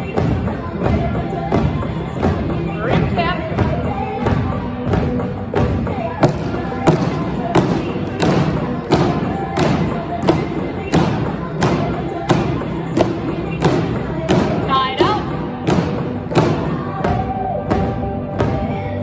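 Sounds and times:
drumsticks thumping exercise balls: 0.0s - 19.0s
upbeat pop song: 0.0s - 19.0s.

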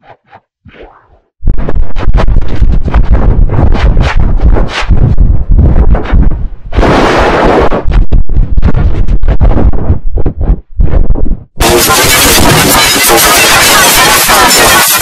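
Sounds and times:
distorted stuttering audio bursts: 11.6s - 15.0s
loud hiss: 11.6s - 15.0s.

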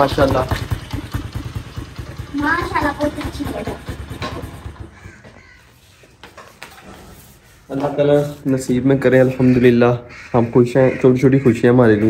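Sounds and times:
motorcycle engine putter: 0.0s - 5.3s.

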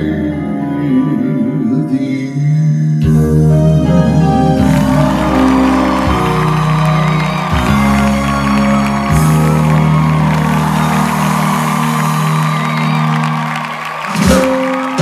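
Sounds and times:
sustained instrumental chords: 3.1s - 15.0s.

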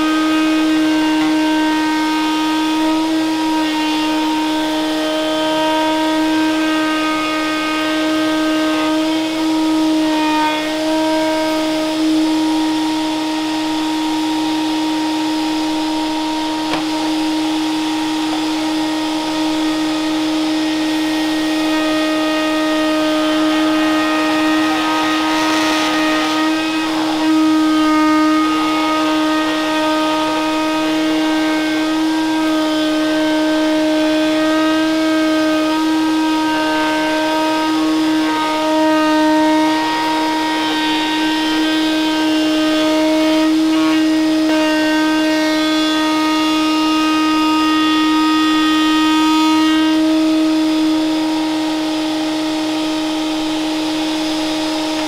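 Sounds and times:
router bit shaving wood: 0.0s - 55.0s
router high whine: 0.0s - 55.0s.

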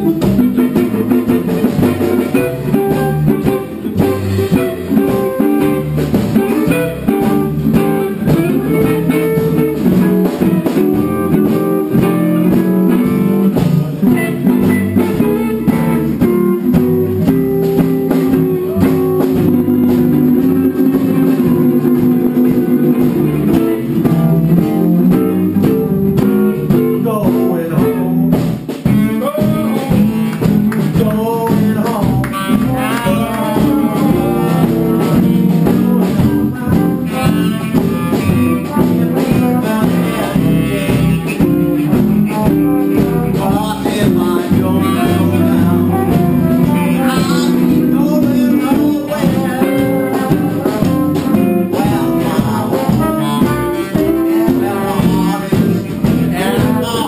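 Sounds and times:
jazz band playing live: 0.0s - 57.0s.

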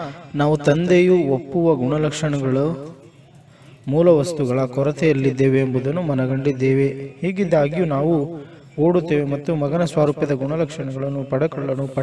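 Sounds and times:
man reading aloud: 0.0s - 2.9s, 3.9s - 12.0s.

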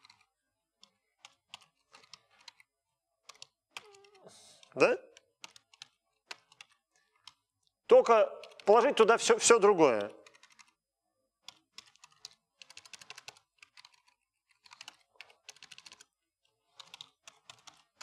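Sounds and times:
typing on computer keyboard: 0.0s - 4.2s, 5.1s - 7.4s, 8.0s - 9.1s, 9.8s - 10.8s, 11.4s - 18.0s.

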